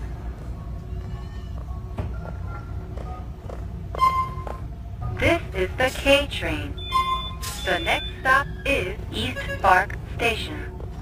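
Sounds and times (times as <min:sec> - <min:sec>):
electronic beep: 0:06.7 - 0:08.6.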